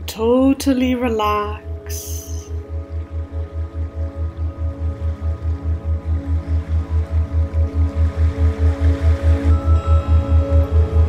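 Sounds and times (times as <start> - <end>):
sustained held chords: 0.0 - 11.0.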